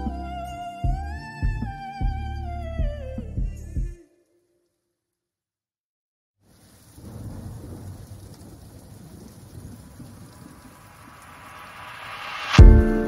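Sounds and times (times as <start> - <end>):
rain: 6.4 - 13.0
low thunder rumble: 6.7 - 13.0.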